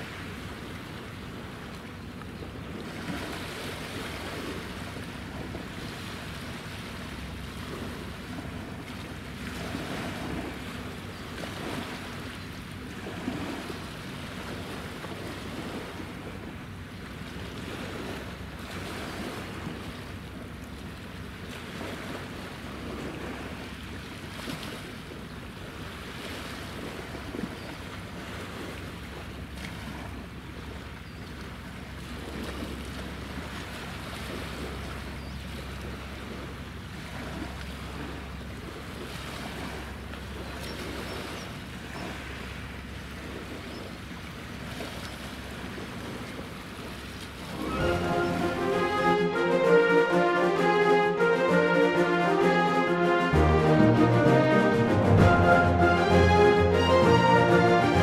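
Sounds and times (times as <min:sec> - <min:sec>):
low hum of ship engines: 0:00.0 - 0:58.0
water lapping: 0:00.0 - 0:58.0.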